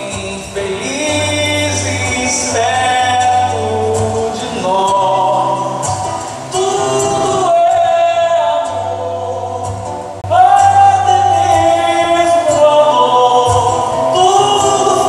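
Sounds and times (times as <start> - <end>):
acoustic guitar: 0.0 - 15.0
man singing: 0.0 - 15.0.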